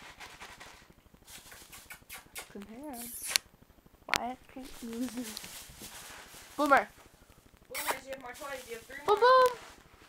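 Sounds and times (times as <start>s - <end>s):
faint rustling: 4.5s - 10.0s.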